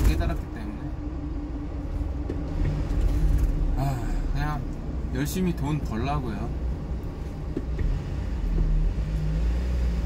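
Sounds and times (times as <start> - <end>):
constant hum: 0.0 - 10.0
engine and road noise in cab: 0.0 - 10.0.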